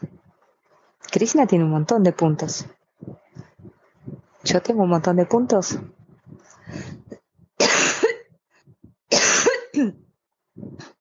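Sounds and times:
person coughing: 7.6s - 8.3s, 9.1s - 10.0s.

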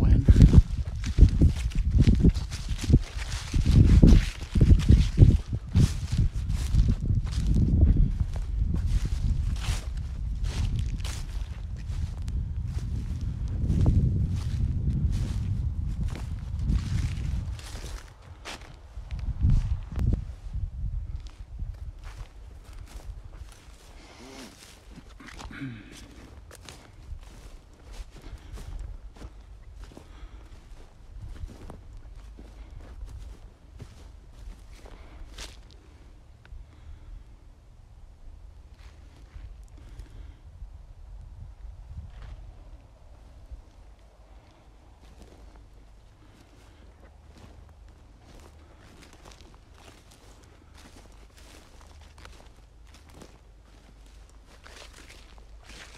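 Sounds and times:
low rumble: 0.0s - 17.8s
footsteps on crunchy grass: 0.0s - 37.0s, 38.6s - 40.4s, 42.0s - 55.9s.

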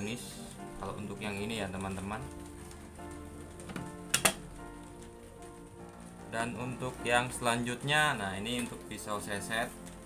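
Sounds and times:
background music: 0.0s - 10.0s.

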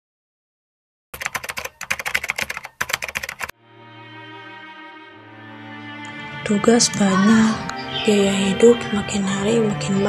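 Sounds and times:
keyboard keystroke clicks: 1.2s - 3.5s.

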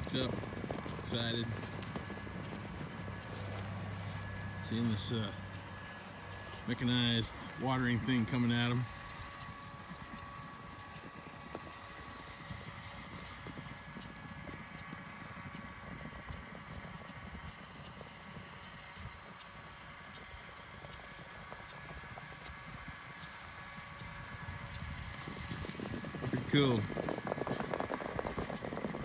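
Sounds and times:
horses galloping on dry dirt: 0.0s - 29.0s.

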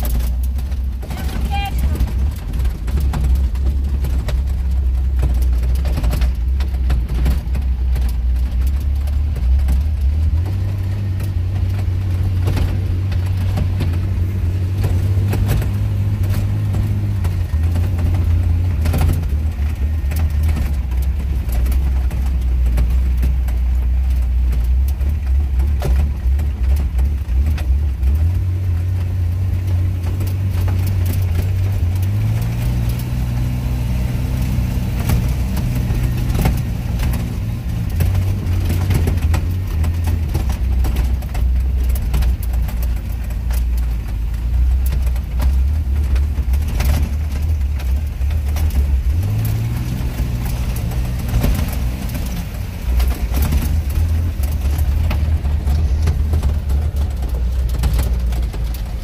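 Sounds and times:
sharp ticks and knocks: 0.0s - 59.0s
vehicle engine running hard: 0.0s - 59.0s.

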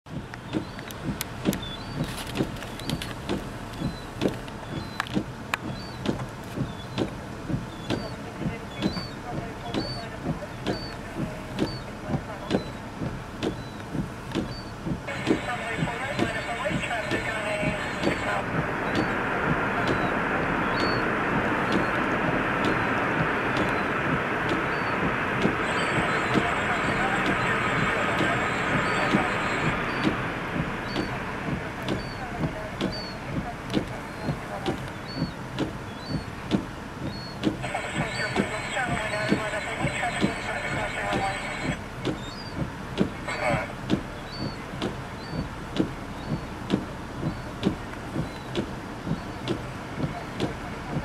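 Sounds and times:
jet engines roaring: 0.3s - 51.0s.

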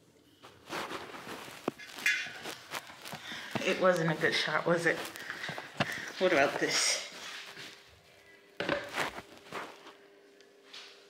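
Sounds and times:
faint steady hum: 0.0s - 11.0s
footsteps on tile floor: 0.4s - 8.0s, 8.6s - 10.0s.

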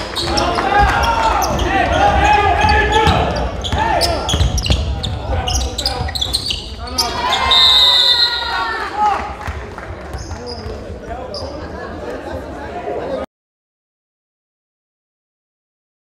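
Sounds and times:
players shouting: 0.0s - 9.6s
crowd voices: 0.0s - 13.3s
referee's whistle: 5.5s - 8.7s.

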